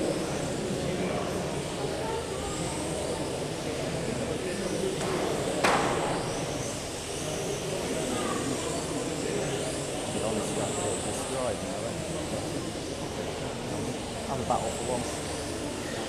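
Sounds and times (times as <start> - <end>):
voices echoing in hall: 0.0 - 16.0.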